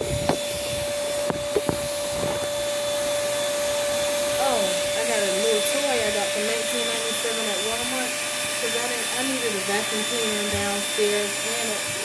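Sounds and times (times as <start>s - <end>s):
vacuum cleaner running: 0.0s - 12.0s.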